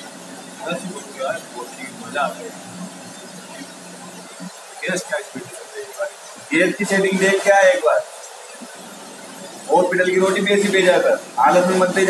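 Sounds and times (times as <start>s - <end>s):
gas burner flames hissing: 0.0s - 12.0s
man talking: 0.6s - 2.6s, 4.8s - 8.1s, 9.7s - 12.0s.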